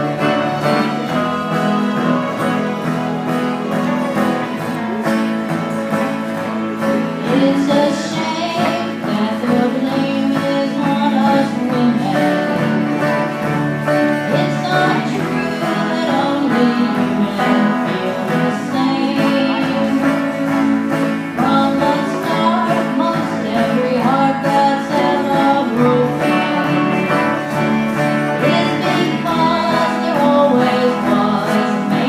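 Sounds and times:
country band playing: 0.0s - 32.0s
woman singing: 7.0s - 32.0s.

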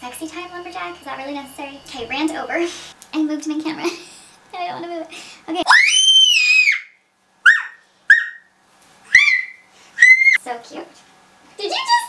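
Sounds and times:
toddler squealing: 5.7s - 8.4s, 9.1s - 10.4s.

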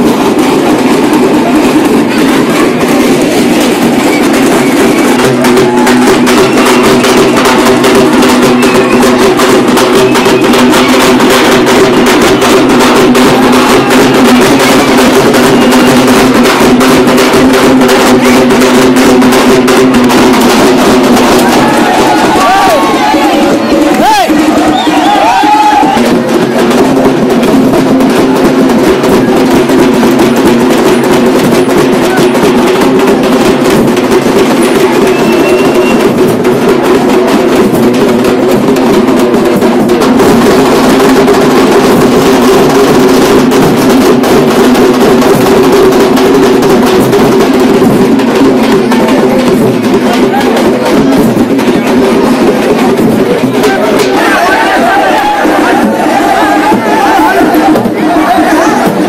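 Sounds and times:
rapid procession drumming: 0.0s - 59.0s.

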